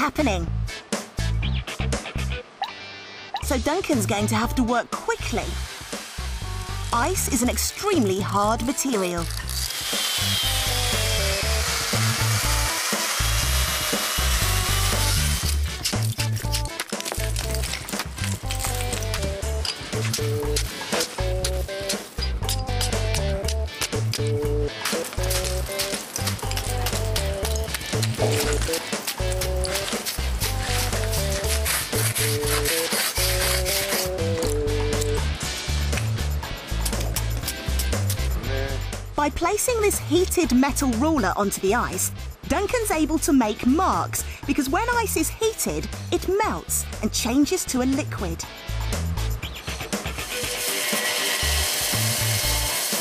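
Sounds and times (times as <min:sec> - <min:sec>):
background music with steady beat: 0:00.0 - 0:53.0
power tool cutting ice: 0:05.6 - 0:07.0, 0:08.8 - 0:16.2, 0:24.8 - 0:34.5, 0:50.1 - 0:53.0.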